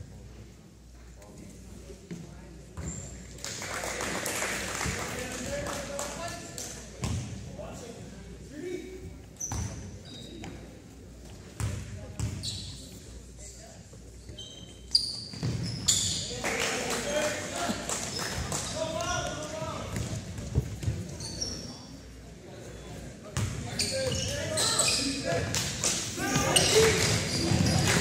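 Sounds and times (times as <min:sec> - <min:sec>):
voices in gym hall: 0:00.0 - 0:28.0
sneaker squeaks: 0:02.8 - 0:03.2, 0:09.3 - 0:10.7, 0:11.6 - 0:13.0, 0:14.2 - 0:16.4, 0:19.9 - 0:21.9, 0:23.4 - 0:25.5, 0:26.2 - 0:28.0.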